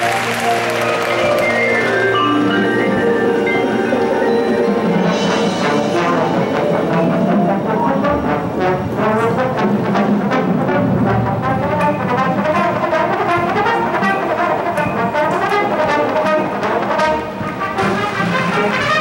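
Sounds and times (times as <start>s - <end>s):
brass section playing: 0.0s - 19.0s
marching percussion: 0.0s - 19.0s.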